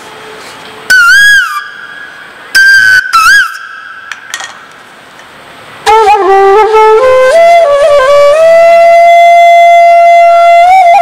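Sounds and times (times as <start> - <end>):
bamboo flute notes: 0.0 - 4.2, 5.8 - 11.0.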